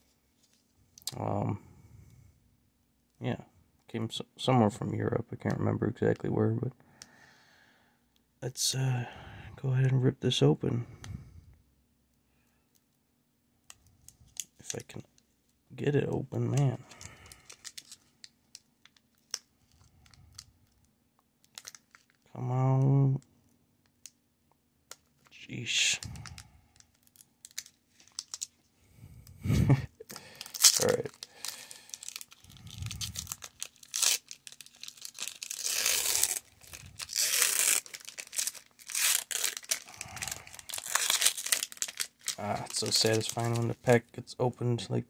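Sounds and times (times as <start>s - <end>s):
foil wrapper crinkling: 16.9s - 20.5s, 21.5s - 22.2s, 26.0s - 28.6s, 30.1s - 44.1s
wrapper seal snapping: 16.9s - 20.5s, 21.4s - 22.2s, 26.0s - 28.5s, 30.1s - 43.6s.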